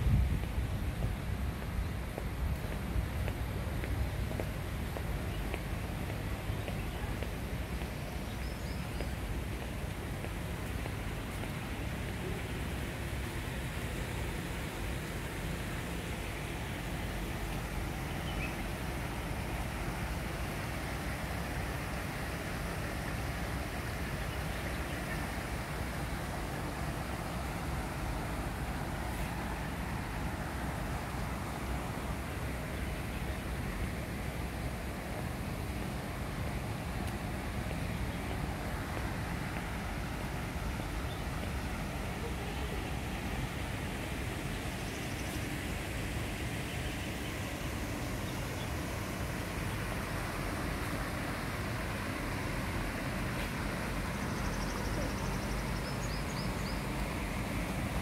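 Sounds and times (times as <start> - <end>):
low outdoor hiss and rumble: 0.0 - 58.0.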